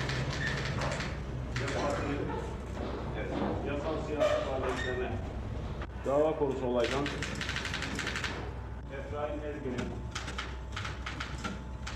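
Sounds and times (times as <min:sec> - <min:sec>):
steady low hum: 0:00.0 - 0:11.9
rapid sharp clicks: 0:06.8 - 0:08.5, 0:10.1 - 0:11.9.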